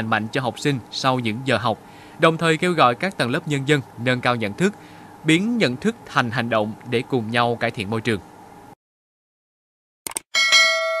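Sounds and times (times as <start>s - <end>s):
bright bell chime: 10.4s - 11.0s.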